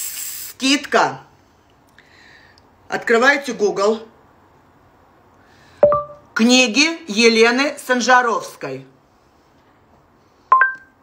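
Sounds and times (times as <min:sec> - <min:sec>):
smartphone two-note beep: 0:05.8 - 0:06.2.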